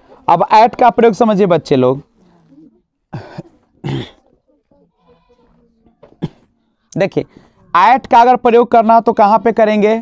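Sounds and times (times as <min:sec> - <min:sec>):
man coughing: 0:03.1 - 0:04.2, 0:06.2 - 0:06.5.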